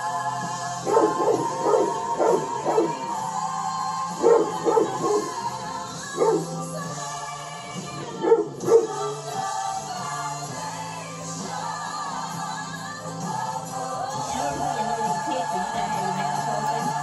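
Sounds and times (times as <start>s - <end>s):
music from a television: 0.0s - 17.0s
dog barking: 0.8s - 3.2s, 4.2s - 5.4s, 6.0s - 6.6s, 8.2s - 9.2s.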